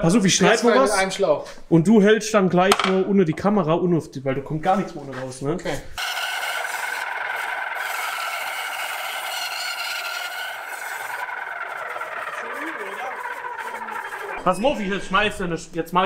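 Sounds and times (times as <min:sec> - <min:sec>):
band saw cutting wood: 0:06.0 - 0:14.4.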